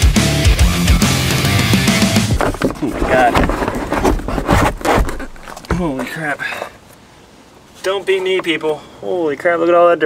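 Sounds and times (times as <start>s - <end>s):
rock music: 0.0s - 2.4s
plastic cover knocks and scrapes: 2.2s - 6.0s.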